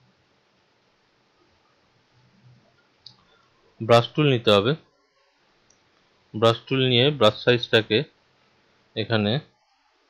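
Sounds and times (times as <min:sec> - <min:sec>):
man speaking: 0:03.8 - 0:04.8, 0:06.4 - 0:08.1, 0:09.0 - 0:09.5.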